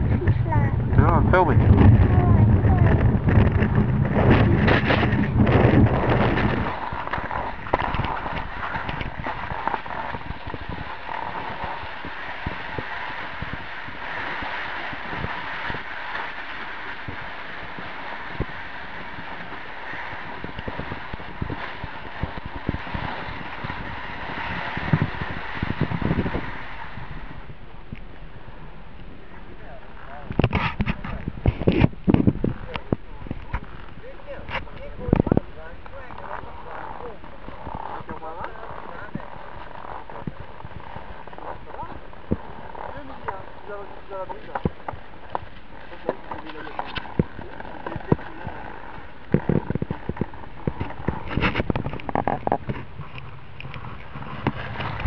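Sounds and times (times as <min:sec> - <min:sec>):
wind noise on microphone: 0:00.0 - 0:55.0
skis sliding on packed snow: 0:00.2 - 0:28.6, 0:29.2 - 0:55.0
ski scrapes: 0:02.2 - 0:27.2, 0:33.4 - 0:55.0.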